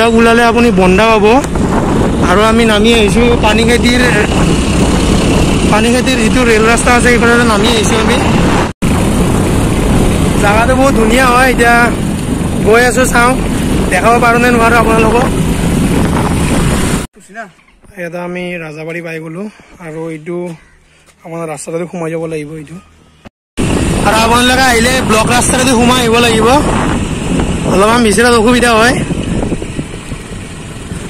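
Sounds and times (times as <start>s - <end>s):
motorbike running: 0.0s - 17.1s, 23.6s - 31.0s
wind buffeting microphone: 0.0s - 17.1s, 23.6s - 31.0s.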